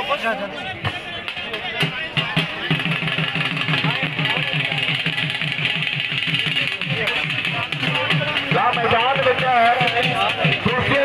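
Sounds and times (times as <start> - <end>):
large crowd noise: 0.0 - 11.0
drums beaten in fast rhythm: 0.8 - 11.0.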